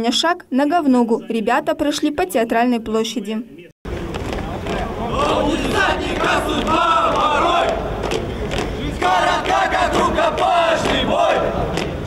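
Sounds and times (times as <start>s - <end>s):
boots marching on pavement: 3.9s - 12.0s
male cadets singing in unison: 4.7s - 11.9s.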